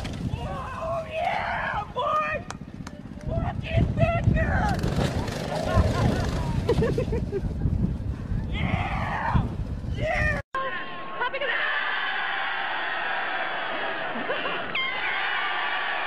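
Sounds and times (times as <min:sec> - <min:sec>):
people shouting: 0:00.3 - 0:02.5.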